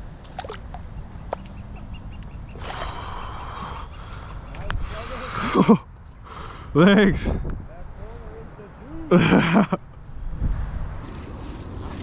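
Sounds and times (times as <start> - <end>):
water splashing: 0.0 - 1.6, 2.5 - 3.7.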